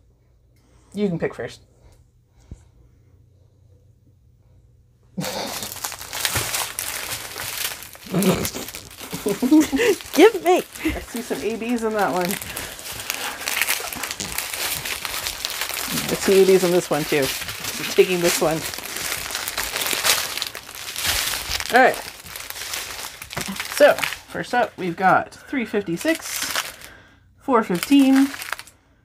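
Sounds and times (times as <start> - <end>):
plastic packaging crinkling: 5.2 - 27.0, 27.6 - 28.8.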